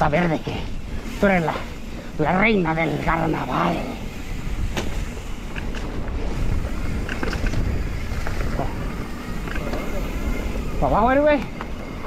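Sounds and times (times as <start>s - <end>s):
bike tyre rumble on dirt: 0.0s - 12.0s
wind buffeting microphone: 0.0s - 12.0s.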